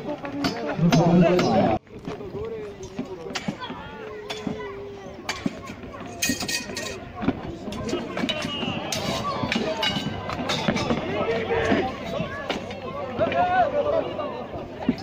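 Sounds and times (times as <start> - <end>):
crowd voices: 0.0 - 15.0.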